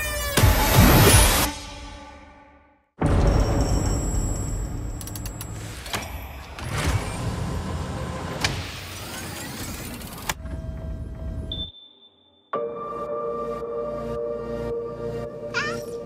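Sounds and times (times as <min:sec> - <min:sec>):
mechanical whirs: 0:05.0 - 0:10.6.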